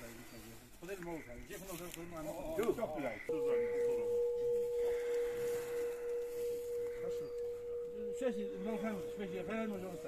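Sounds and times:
steady pure tone: 0:03.2 - 0:10.0.

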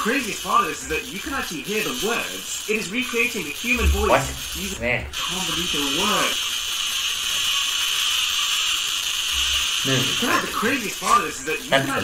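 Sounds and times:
tesla coil buzzing music: 0:00.3 - 0:12.0.

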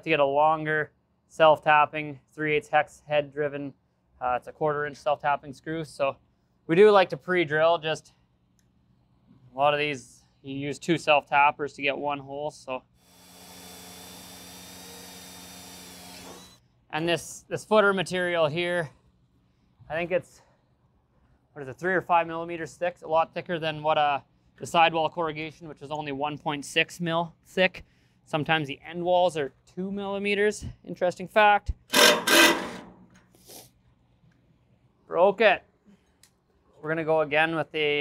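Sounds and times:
cordless drill boring into steel: 0:13.0 - 0:16.6, 0:31.9 - 0:32.8.

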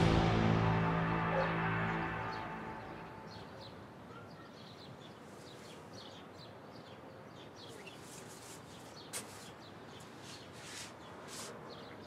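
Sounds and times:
soft rustling: 0:07.7 - 0:11.6.

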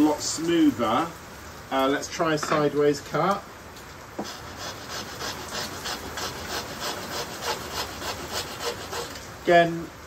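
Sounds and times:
hand saw cutting wood: 0:04.2 - 0:09.2.

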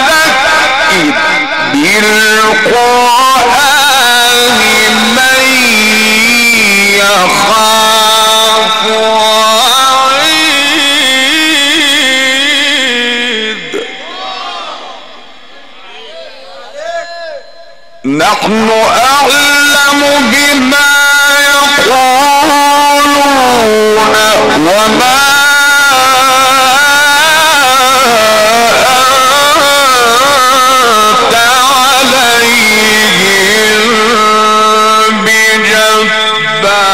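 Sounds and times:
man reciting over pa system: 0:00.0 - 0:14.0, 0:16.6 - 0:36.9
man chanting through a microphone: 0:00.0 - 0:14.1, 0:16.0 - 0:36.9.

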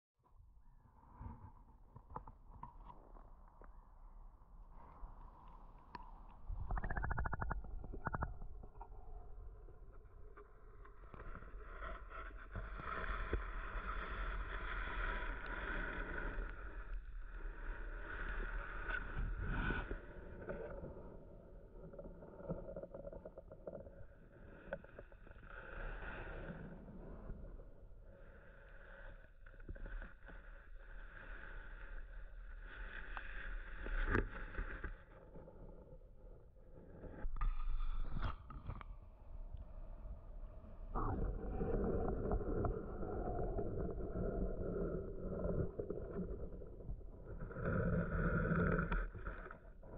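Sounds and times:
muffled underwater water noise: 0:00.6 - 0:49.9.

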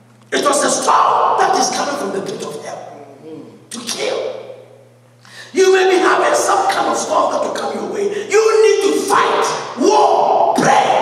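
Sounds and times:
steady low hum: 0:00.0 - 0:11.0
man speaking into microphone: 0:00.3 - 0:04.4, 0:05.5 - 0:10.0.

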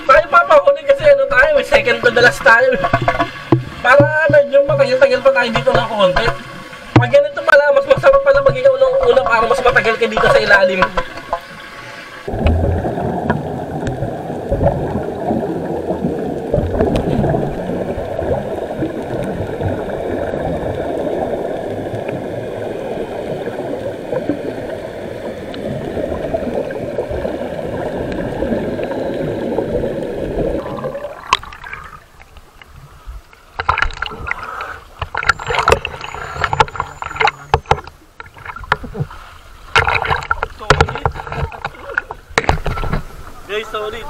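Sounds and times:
underwater air bubbling: 0:00.8 - 0:43.5.

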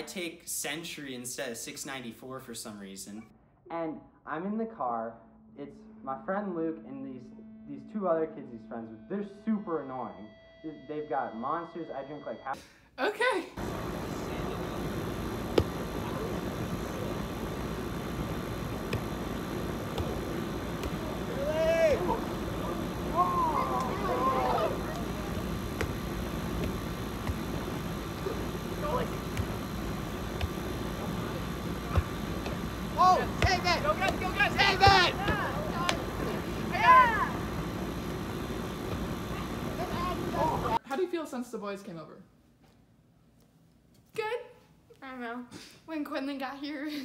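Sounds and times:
outdoor background noise: 0:13.0 - 0:41.2
steady rushing noise: 0:13.6 - 0:40.8
volleyball struck by hand: 0:15.5 - 0:15.8, 0:18.3 - 0:21.3, 0:23.6 - 0:36.4.

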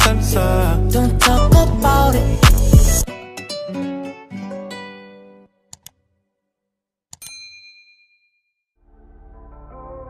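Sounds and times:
music: 0:00.0 - 0:05.7, 0:08.8 - 0:10.0
bell-like ding: 0:07.2 - 0:08.6.

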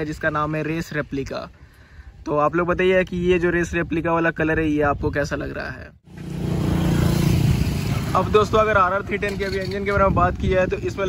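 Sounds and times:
vehicle engine rumbling: 0:06.0 - 0:11.0.

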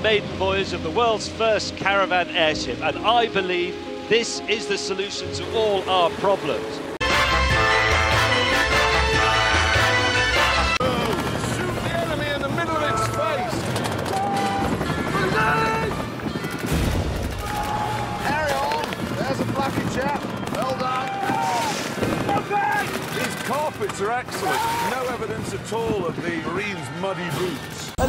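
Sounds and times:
music: 0:00.0 - 0:20.6, 0:21.2 - 0:28.0
voices shouting: 0:10.8 - 0:16.2, 0:17.3 - 0:19.0, 0:20.3 - 0:23.5, 0:24.3 - 0:25.1
machine-gun fire: 0:13.6 - 0:17.8, 0:18.5 - 0:23.9
sharp gunshots: 0:16.5 - 0:25.0.

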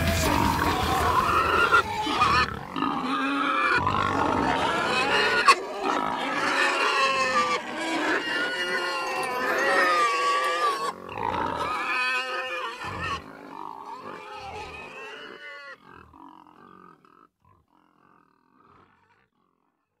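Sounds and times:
wavering animal calls: 0:00.0 - 0:19.2.

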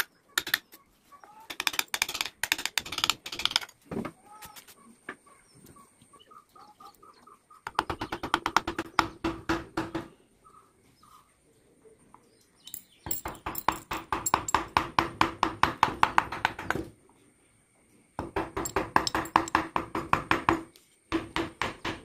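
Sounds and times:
faint bird chirps: 0:10.1 - 0:13.5
chisel tapping into wood: 0:18.3 - 0:20.6.

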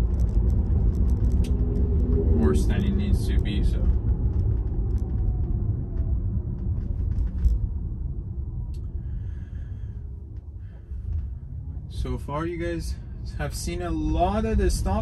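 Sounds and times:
road and tyre rumble: 0:00.0 - 0:15.0.

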